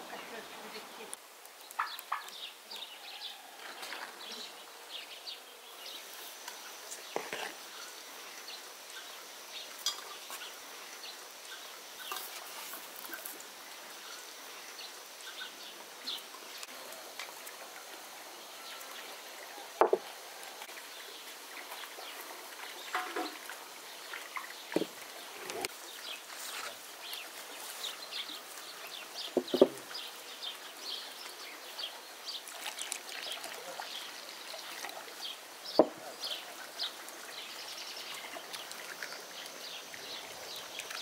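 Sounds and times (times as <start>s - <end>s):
bowls knocking on table: 19.8s - 20.0s, 29.4s - 29.8s.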